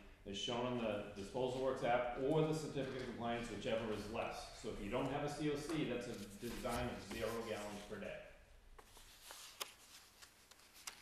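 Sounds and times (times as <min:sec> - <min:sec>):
paper sheets rustling: 0:03.8 - 0:08.1, 0:08.8 - 0:11.0.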